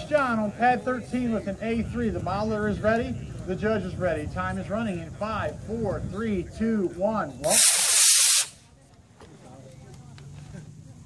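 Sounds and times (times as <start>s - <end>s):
rocket motor rushing hiss: 7.4s - 8.6s.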